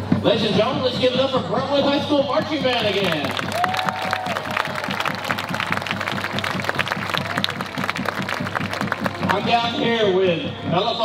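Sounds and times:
fast drum beat: 0:00.2 - 0:09.8
crowd applauding: 0:02.4 - 0:09.5.

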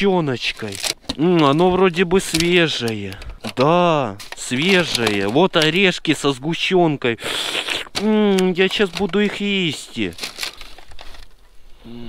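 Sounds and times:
plastic rustling: 0:00.0 - 0:06.4, 0:07.6 - 0:11.5
plastic tray crackling and clicking: 0:00.4 - 0:06.0, 0:07.9 - 0:11.3.

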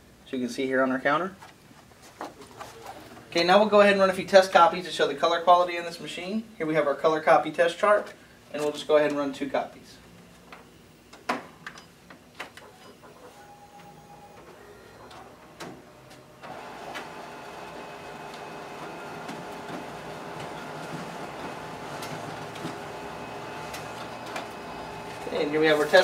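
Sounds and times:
copier whirring: 0:12.4 - 0:26.0
copier clicks: 0:16.4 - 0:25.5.

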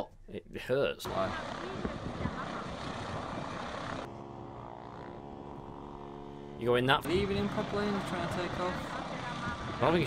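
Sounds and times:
helicopter rotor: 0:01.0 - 0:10.0
steady engine hum: 0:01.0 - 0:10.0
wind noise: 0:01.1 - 0:04.1, 0:08.6 - 0:10.0.

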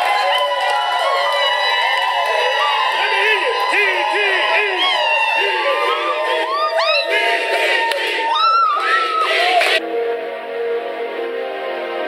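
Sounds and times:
crowd cheering and shouting: 0:00.0 - 0:09.8
music: 0:09.1 - 0:12.0.

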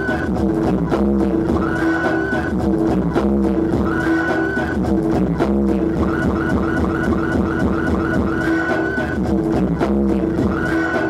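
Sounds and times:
electronic dance music on synthesizer: 0:00.0 - 0:11.0.

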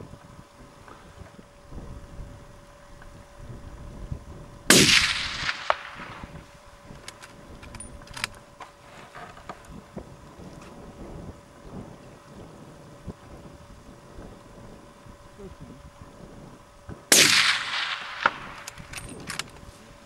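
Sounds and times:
rifle shot echoing: 0:04.7 - 0:06.5, 0:17.1 - 0:18.8.

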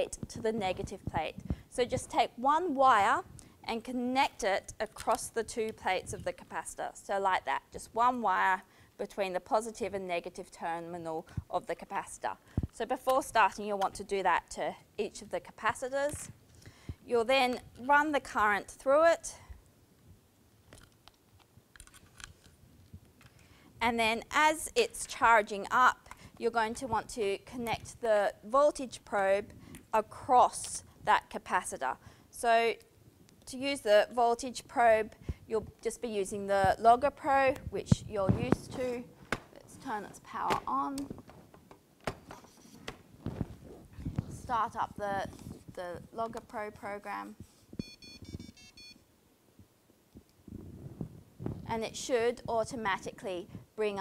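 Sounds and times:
wire leads and clips clicking: 0:20.7 - 0:23.4
electronic jingle beeps: 0:47.8 - 0:49.0.

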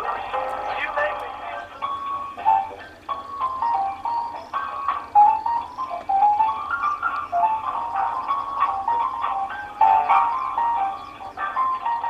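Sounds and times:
hold music over phone speaker: 0:00.0 - 0:12.0.

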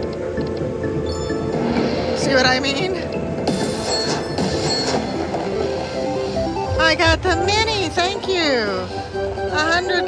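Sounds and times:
slot machine music: 0:00.0 - 0:10.0
slot machine chimes: 0:00.8 - 0:05.8.

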